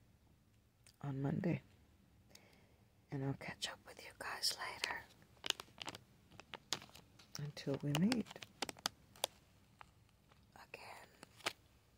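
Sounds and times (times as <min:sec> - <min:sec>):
soft whisper: 0:03.1 - 0:05.2, 0:10.4 - 0:11.5.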